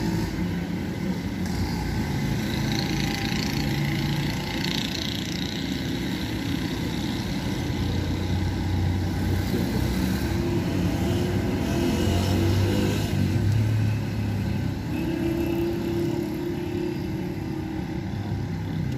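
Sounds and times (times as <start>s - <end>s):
passing vehicle engines: 0.0s - 18.9s.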